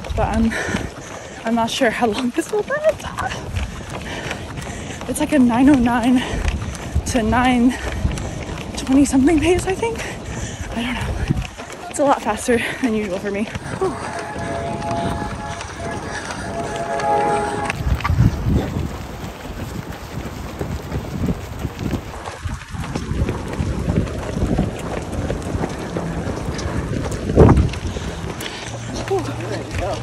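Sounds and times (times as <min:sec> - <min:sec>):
footsteps on asphalt: 0:00.0 - 0:13.8, 0:19.0 - 0:30.0
wind buffeting microphone: 0:00.0 - 0:30.0
sustained music-like tones: 0:13.5 - 0:18.9.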